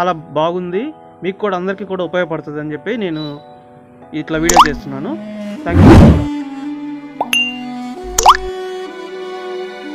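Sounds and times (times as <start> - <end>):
background music: 0.0 - 9.9
cartoon rising pop: 4.5 - 4.8, 8.1 - 8.5
bright ding: 7.2 - 7.6.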